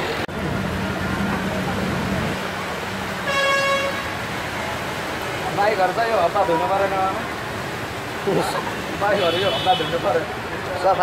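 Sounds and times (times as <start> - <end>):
traffic driving through floodwater: 0.0 - 11.0
vehicle horn toot: 3.3 - 4.2, 9.1 - 10.1.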